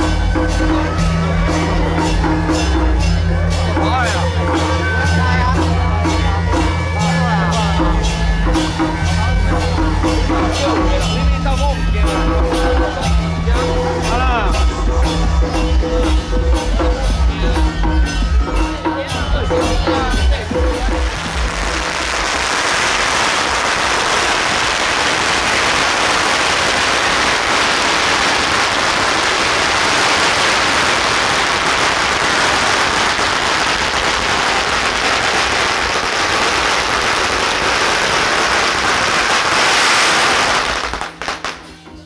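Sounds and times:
firecrackers crackling: 20.1s - 41.8s.

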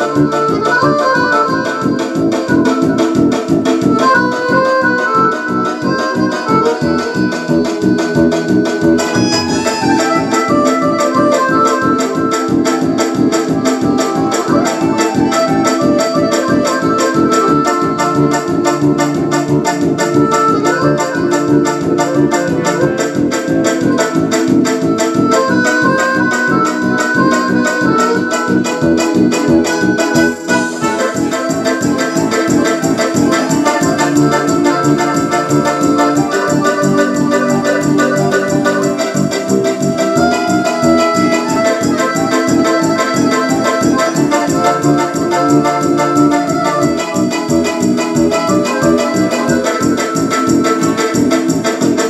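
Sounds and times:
piano accordion playing: 0.0s - 52.0s.

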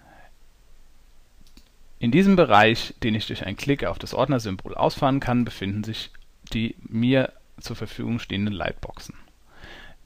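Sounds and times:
computer mouse click: 1.4s - 1.7s.

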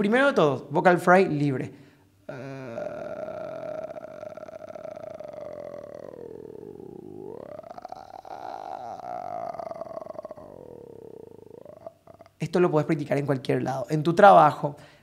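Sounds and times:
man's creaky vocal fry: 2.3s - 12.8s.

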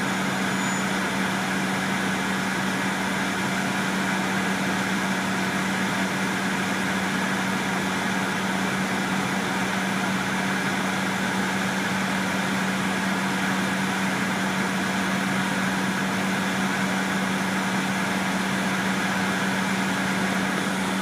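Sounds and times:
bus engine idling: 0.0s - 21.0s.

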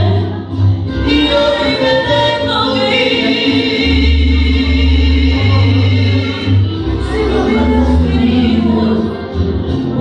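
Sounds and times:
instrumental backing with bass: 0.0s - 10.0s.

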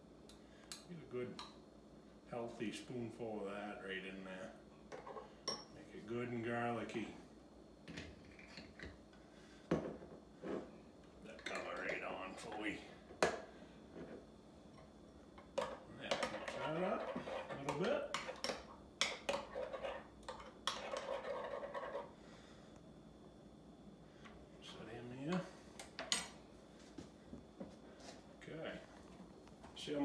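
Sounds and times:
spoon scraping glass: 20.7s - 22.1s.

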